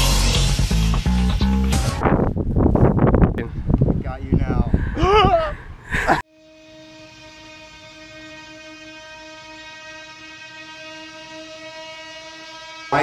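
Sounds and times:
buzzy steady held tone: 0:06.3 - 0:13.0.

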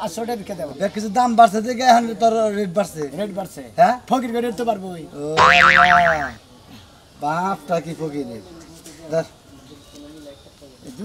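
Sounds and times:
comic boing sound effect: 0:05.4 - 0:06.4.

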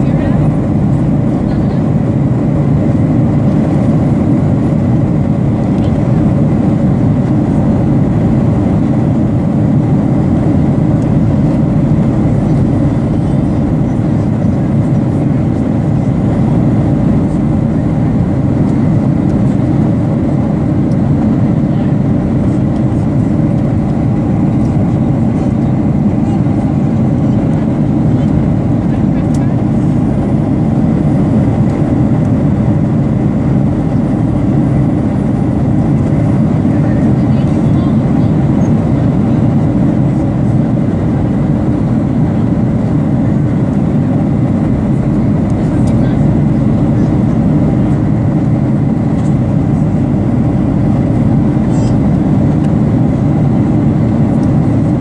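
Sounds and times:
jet engines and airflow in cabin: 0:00.0 - 0:55.0.

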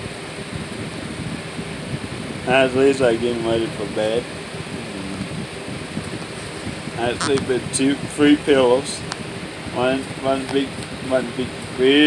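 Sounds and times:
fan running: 0:00.0 - 0:12.0.

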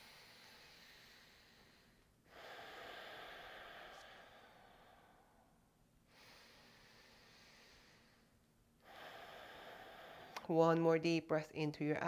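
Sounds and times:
person breathing deeply: 0:00.0 - 0:10.5.

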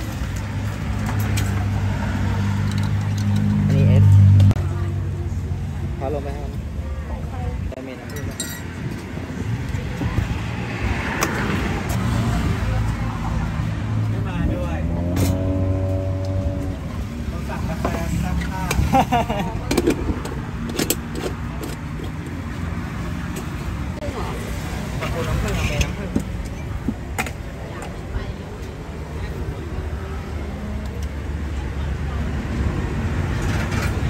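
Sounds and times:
vehicle engine humming: 0:00.0 - 0:08.0, 0:08.7 - 0:34.0
glassware and utensils clinking: 0:08.0 - 0:08.8.

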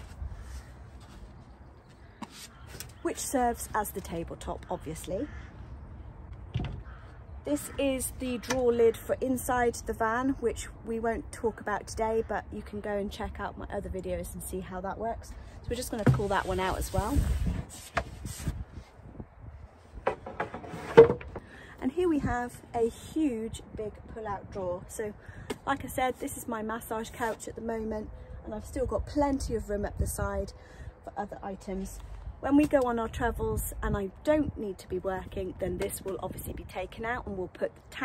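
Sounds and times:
wooden knocks and scrapes: 0:19.9 - 0:21.5
plywood board handled: 0:20.0 - 0:21.4.

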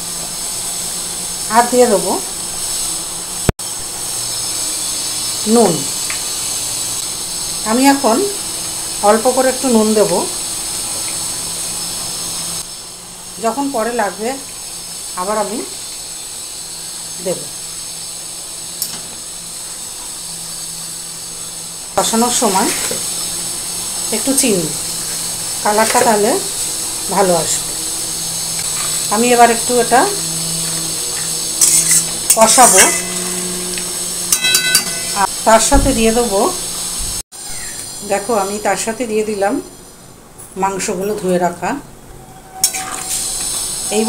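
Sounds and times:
paste sizzling in hot oil: 0:00.0 - 0:38.8, 0:42.6 - 0:44.0
spoon scraping paste in wok: 0:31.2 - 0:35.2.

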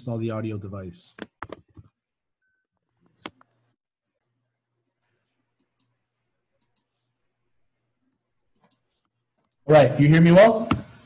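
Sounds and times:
computer mouse clicks: 0:05.6 - 0:06.0, 0:06.6 - 0:07.1, 0:08.5 - 0:09.1.

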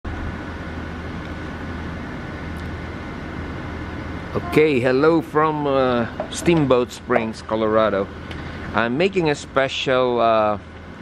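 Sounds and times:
low mechanical hum: 0:00.1 - 0:11.0.

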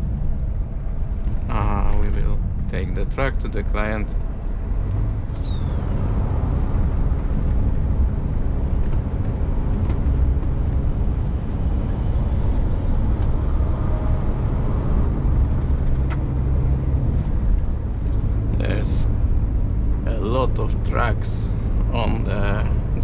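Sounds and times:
truck engine and road drone: 0:00.0 - 0:23.0
high falling whistle: 0:05.1 - 0:06.1.

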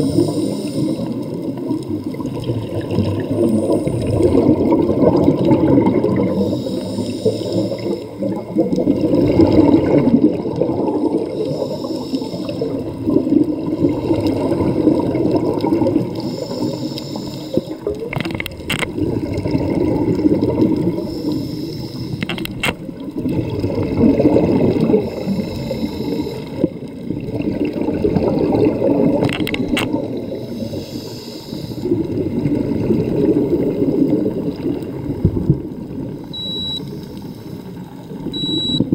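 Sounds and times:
regulator hiss on inhale: 0:00.0 - 0:01.4, 0:06.2 - 0:08.3, 0:11.2 - 0:12.8, 0:16.1 - 0:17.9, 0:20.9 - 0:22.4, 0:24.9 - 0:26.7, 0:30.2 - 0:32.0, 0:36.8 - 0:38.0
bubbling exhaled air: 0:00.0 - 0:36.4
short high beep: 0:36.3 - 0:36.9, 0:38.4 - 0:38.9.

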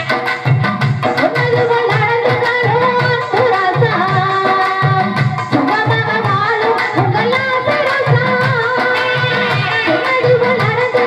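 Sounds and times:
hand drum beat: 0:00.0 - 0:11.0
woman singing through microphone: 0:00.0 - 0:11.0.

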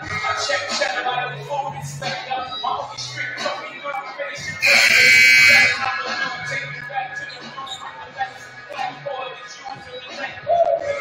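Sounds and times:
crowd chatter: 0:04.4 - 0:10.3
scoreboard horn buzzing: 0:04.6 - 0:05.8.

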